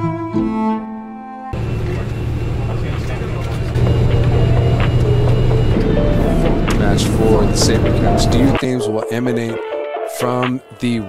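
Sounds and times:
background music: 0.0s - 1.6s, 3.8s - 11.0s
road and engine rumble: 1.6s - 8.6s.

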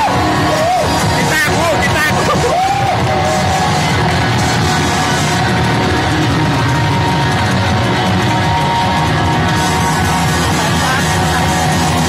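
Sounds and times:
live rock band: 0.0s - 12.0s.

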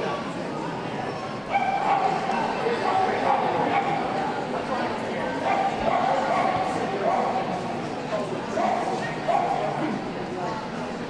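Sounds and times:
crowd chatter: 0.0s - 11.0s
dogs barking and yipping: 1.5s - 2.2s, 8.6s - 9.7s.

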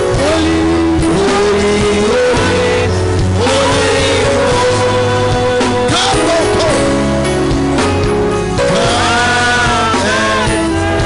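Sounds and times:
man singing: 0.0s - 7.5s, 8.4s - 11.0s
band with steady bass: 0.0s - 11.0s.

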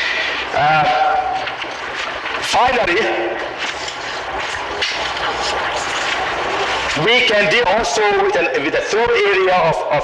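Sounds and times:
cassette tape hiss: 0.0s - 8.9s
faint continuous hum: 0.0s - 10.0s.

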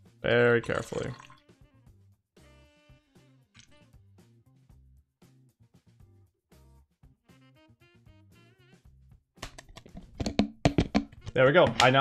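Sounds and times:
plastic bottles clicking and knocking: 9.4s - 12.0s.

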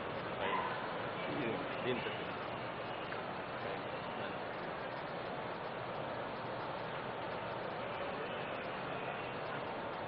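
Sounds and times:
room noise hiss: 0.0s - 10.0s
faint indistinct voices: 6.7s - 10.0s.

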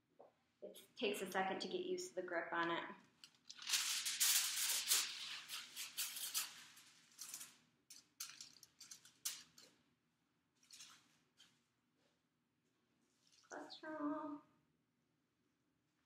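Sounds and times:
aluminium foil crinkling: 3.2s - 9.8s, 10.6s - 11.5s.

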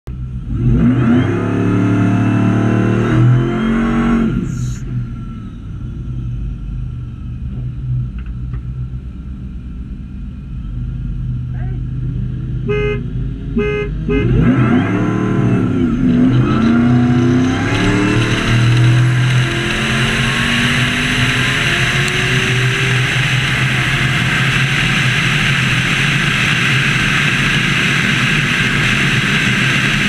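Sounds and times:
truck engine accelerating: 0.1s - 30.0s
horn toots: 12.6s - 14.9s.

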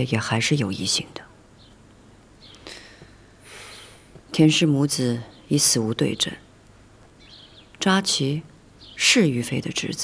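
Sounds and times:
woman speaking: 0.0s - 1.4s, 3.5s - 6.5s, 7.8s - 10.0s
soft breathy sound: 2.5s - 4.3s.

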